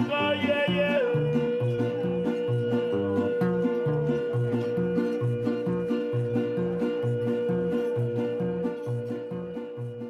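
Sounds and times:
plucked bass line: 0.0 - 10.0
strummed guitars: 0.0 - 10.0
person singing a long note: 0.7 - 10.0.

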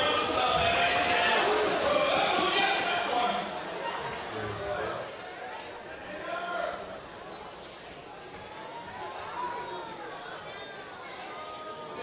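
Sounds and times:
people calling out and talking: 0.0 - 12.0.

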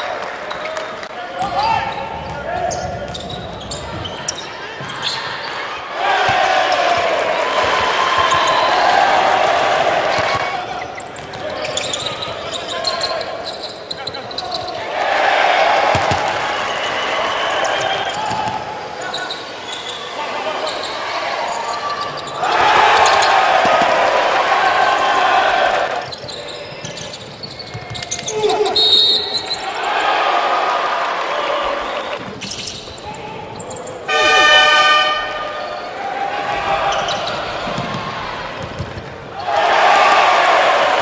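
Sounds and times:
crowd noise: 0.0 - 41.0
voices in a hall: 0.0 - 41.0
basketball bouncing on court: 6.1 - 8.6, 10.0 - 12.1, 15.9 - 16.4, 26.8 - 28.6, 36.9 - 39.4.

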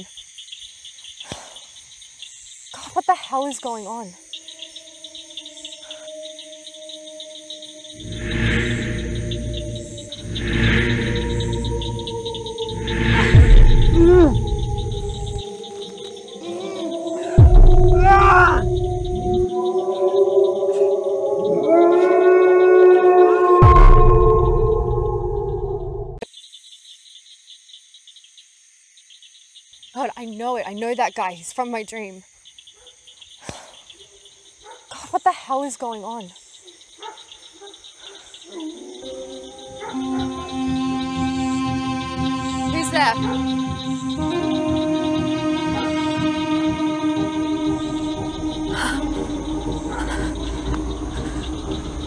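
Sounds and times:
crickets chirping: 0.0 - 52.0
high insect buzz: 0.0 - 52.0
musical drone: 5.4 - 26.2, 38.7 - 52.0
loud low sound: 8.0 - 15.4, 17.0 - 19.9, 23.6 - 26.2.

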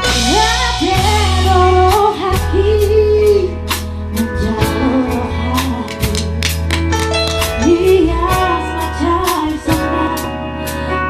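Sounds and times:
woman singing: 0.0 - 6.7, 7.4 - 11.0
drum kit: 0.0 - 11.0
electric bass: 0.0 - 11.0
keyboard: 0.0 - 11.0.

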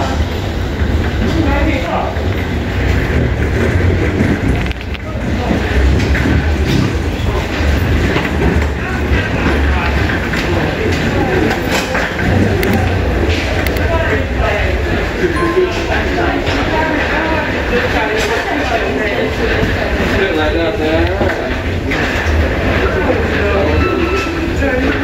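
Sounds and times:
passengers' voices: 0.0 - 25.0.

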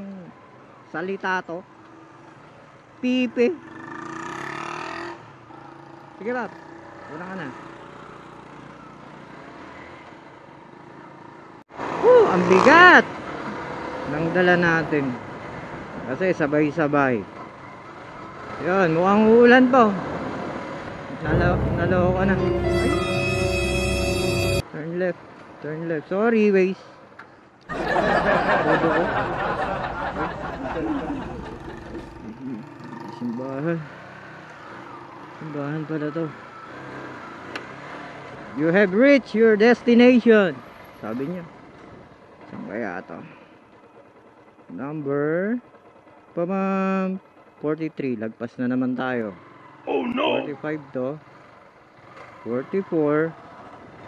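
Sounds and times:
background traffic rumble: 0.0 - 54.0
road noise: 0.0 - 54.0
motorcycle engine: 3.6 - 14.2, 17.3 - 24.6, 31.1 - 35.5, 43.4 - 47.6
man humming and laughing: 49.9 - 50.5.

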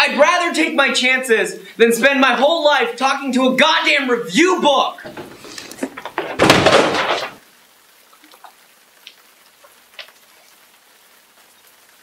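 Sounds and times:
object crashing against door: 5.1 - 7.4.

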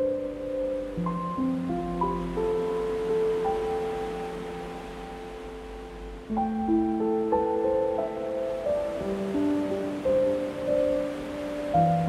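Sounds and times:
ocean surf: 0.0 - 12.0
soft piano notes: 0.0 - 12.0.

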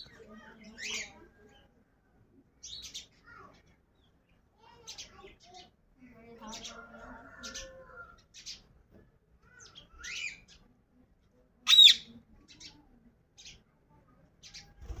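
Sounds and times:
parakeets chirping: 11.7 - 12.0.

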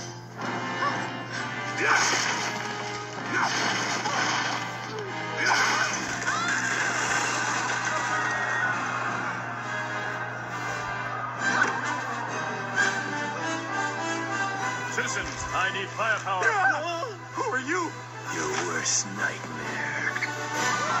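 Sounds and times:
film score music: 0.0 - 21.0.

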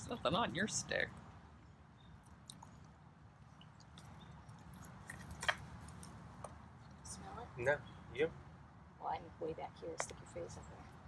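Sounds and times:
cougar licking and chewing: 2.3 - 7.0.

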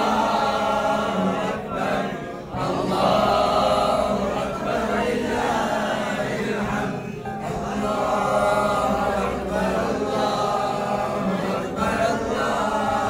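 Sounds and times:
voices singing devotional chant: 0.0 - 13.0.

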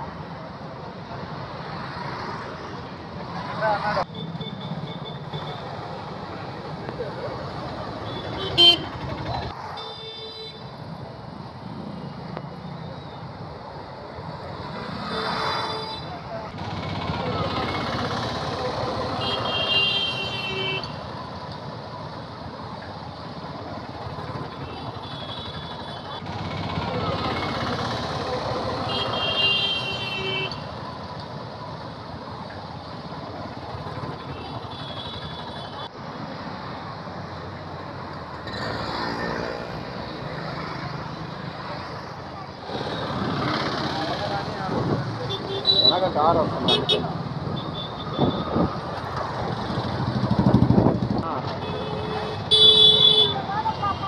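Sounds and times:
road noise: 0.0 - 54.0
motorcycles passing: 0.6 - 10.0, 13.4 - 54.0
vehicle horns: 8.0 - 9.1, 9.7 - 10.7, 15.0 - 16.2, 18.9 - 21.0, 24.5 - 27.5, 28.3 - 30.7, 34.2 - 35.9, 45.2 - 48.7, 51.4 - 54.0.

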